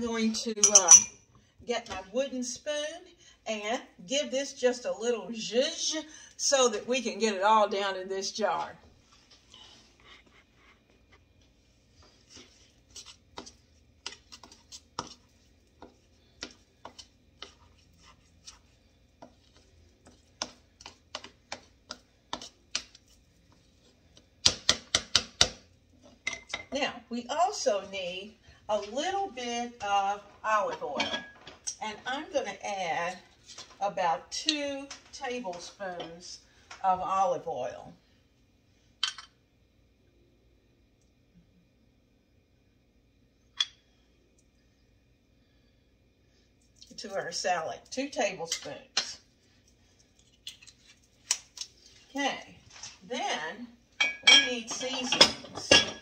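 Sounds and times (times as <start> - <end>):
glass clink: 0.6 - 1.2, 54.0 - 56.0.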